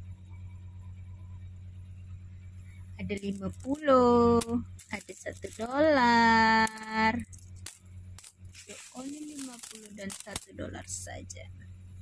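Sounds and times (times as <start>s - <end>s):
coins clinking: 3.1s - 6.0s, 6.6s - 11.1s.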